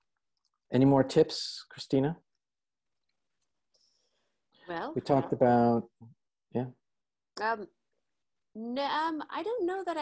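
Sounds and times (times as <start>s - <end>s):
man asking a question: 4.9s - 6.8s.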